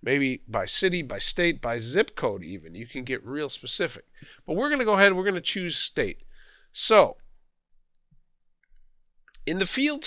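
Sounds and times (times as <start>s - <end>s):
person speaking: 0.0s - 7.4s, 9.2s - 10.0s.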